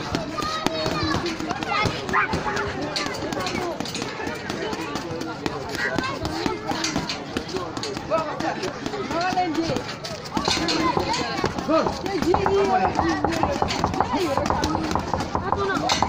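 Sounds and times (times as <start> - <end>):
gloves punching heavy bag: 0.0 - 15.8
people talking and calling: 0.0 - 16.0.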